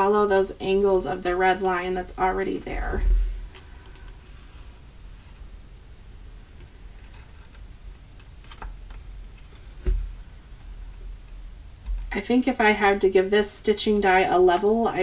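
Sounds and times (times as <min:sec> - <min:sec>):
low bump: 0:02.6 - 0:03.4.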